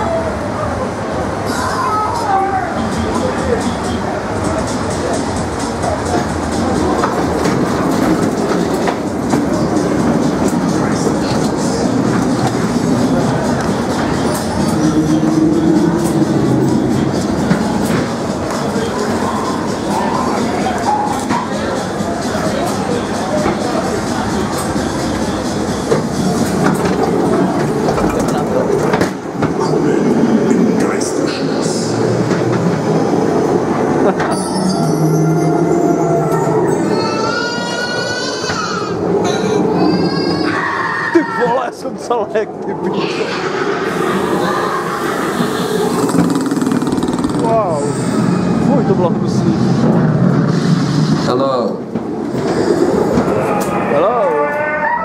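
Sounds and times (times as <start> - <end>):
ride car wheel noise on track: 0.0 - 55.0.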